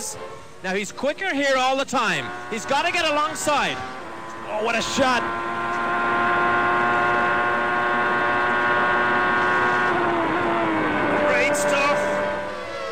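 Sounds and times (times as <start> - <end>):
racing car engine whine: 0.0 - 12.9.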